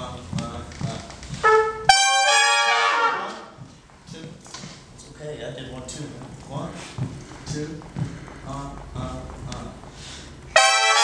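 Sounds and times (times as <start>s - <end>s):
trumpets playing chord: 1.4s - 3.6s, 10.5s - 11.0s.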